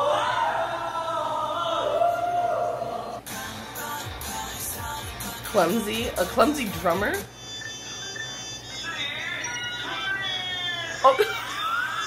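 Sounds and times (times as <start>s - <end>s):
faint background music: 0.0s - 12.0s
high-pitched voices exclaiming: 7.6s - 12.0s.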